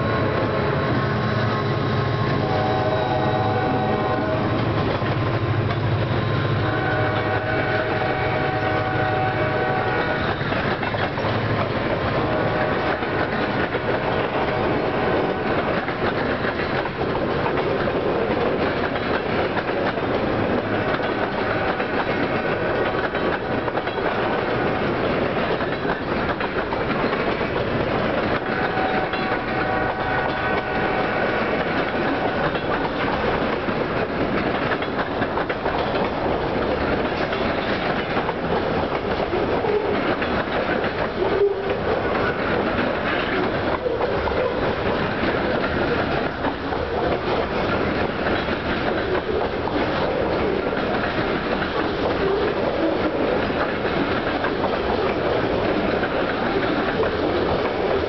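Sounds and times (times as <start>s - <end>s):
wheels clacking over rail joints: 0.0s - 58.0s
held stacked horn tone: 28.4s - 31.6s.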